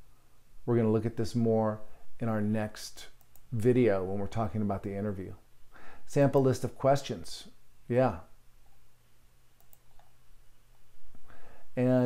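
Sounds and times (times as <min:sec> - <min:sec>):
faint quick clicks: 0:09.6 - 0:10.2.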